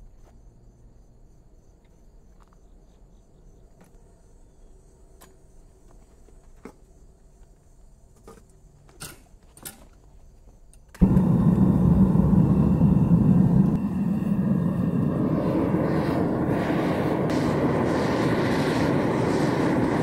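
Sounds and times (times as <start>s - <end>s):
gas burner roaring: 11.0s - 20.0s.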